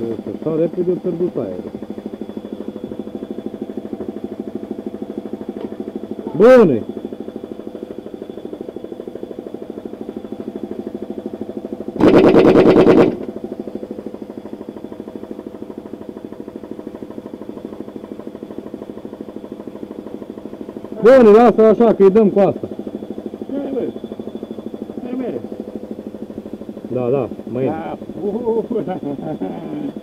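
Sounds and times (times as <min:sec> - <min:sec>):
air compressor running: 0:00.0 - 0:30.0
impact wrench hammering: 0:12.0 - 0:13.3.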